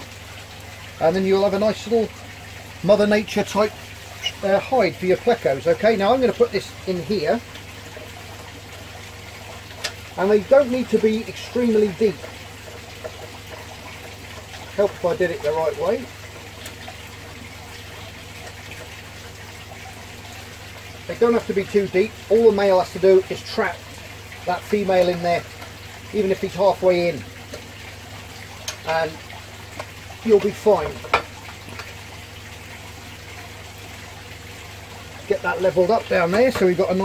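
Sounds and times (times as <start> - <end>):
trickling water: 0.0 - 37.0.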